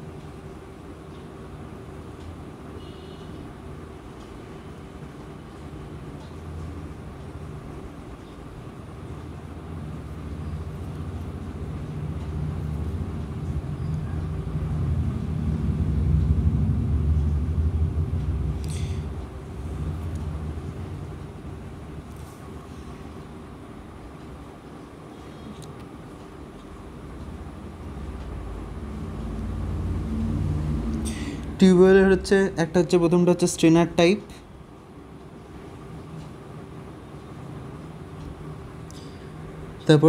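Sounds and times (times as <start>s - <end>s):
passing vehicle rumble: 9.6s - 22.1s, 27.2s - 33.1s.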